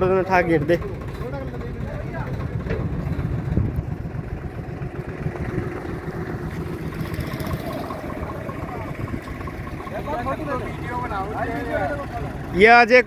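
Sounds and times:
diesel tractor engine running: 0.0s - 13.0s.

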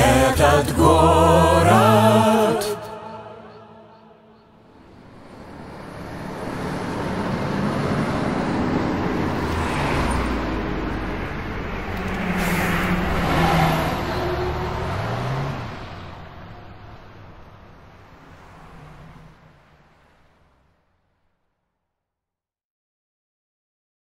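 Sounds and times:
vehicles passing: 0.0s - 21.4s.

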